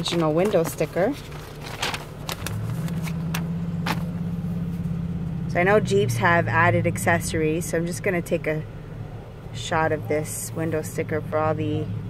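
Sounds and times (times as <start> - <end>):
paper rustling and clicks: 0.0 - 4.1
car engine idling: 0.1 - 12.0.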